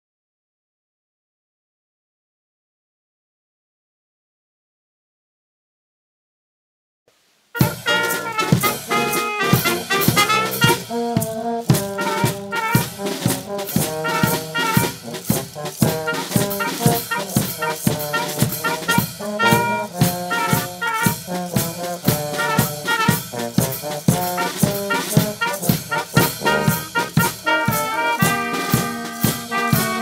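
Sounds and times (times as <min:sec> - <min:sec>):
brass band playing: 0:07.5 - 0:30.0
bass drum and snare beat: 0:07.6 - 0:30.0.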